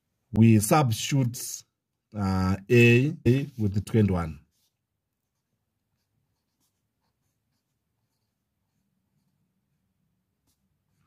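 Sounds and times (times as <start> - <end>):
marker pen scratching on paper: 3.3 - 11.0.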